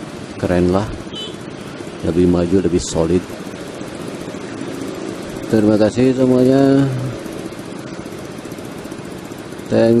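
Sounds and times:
scooters and cars idling: 0.0s - 10.0s.

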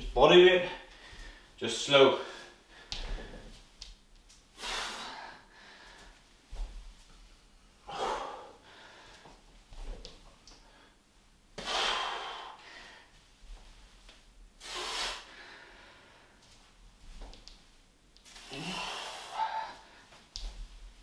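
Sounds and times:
man breathing out hard: 7.8s - 9.3s, 11.6s - 13.1s, 18.4s - 20.1s.

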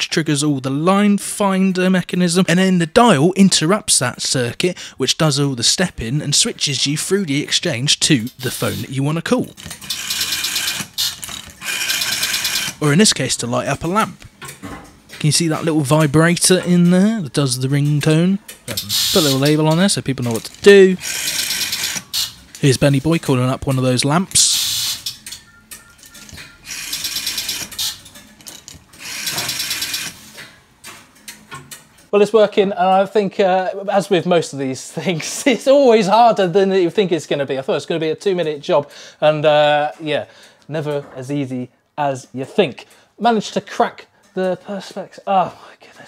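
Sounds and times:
telephone exchange relays clicking: 8.0s - 13.2s, 13.8s - 32.1s
rotary dial whirring back: 9.5s - 13.0s, 18.7s - 23.0s, 26.1s - 30.5s.

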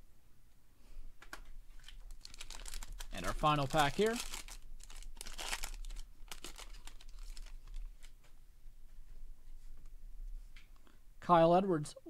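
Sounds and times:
foil wrapper crinkling: 1.7s - 8.2s.

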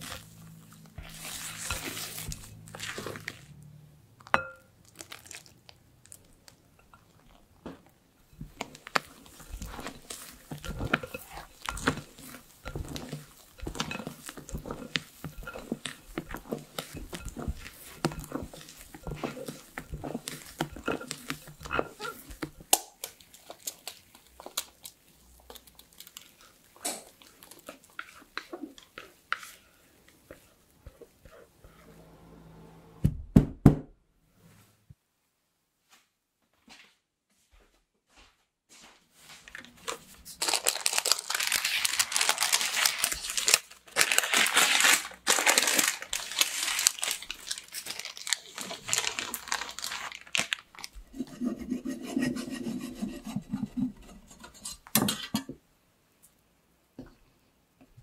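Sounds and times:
knife scrape: 0.0s - 3.4s, 9.0s - 22.6s, 51.1s - 55.0s
parchment paper rustling: 0.0s - 3.6s, 8.4s - 28.4s, 39.2s - 54.7s
knife sawing through sponge cake: 51.1s - 54.2s.

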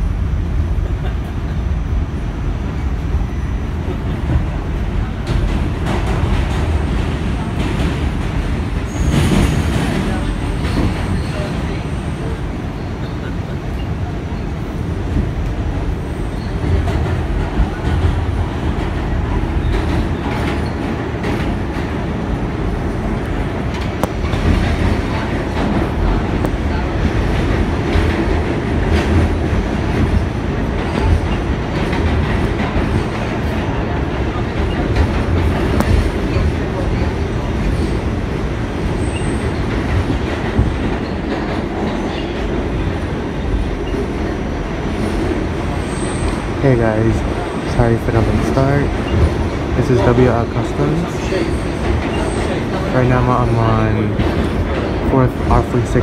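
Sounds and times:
subway wheels rumbling on rails: 0.0s - 56.0s.

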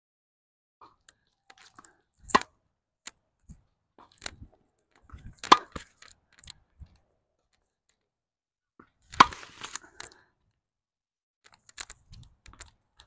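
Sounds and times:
tennis racket hits: 9.2s - 9.8s.

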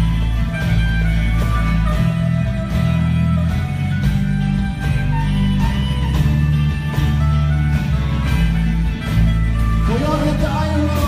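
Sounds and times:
bass notes: 0.0s - 11.0s
drums: 0.0s - 11.0s
electric guitars: 0.0s - 11.0s.

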